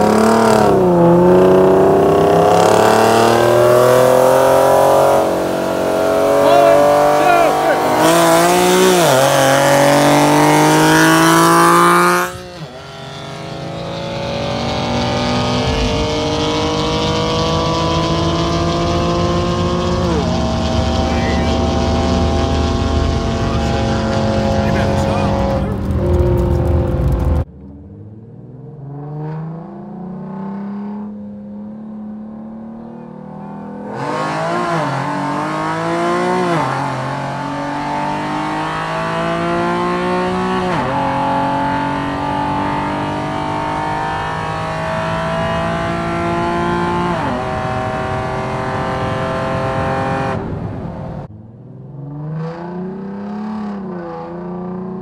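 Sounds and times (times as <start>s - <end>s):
car engines revving at full throttle: 0.0s - 55.0s.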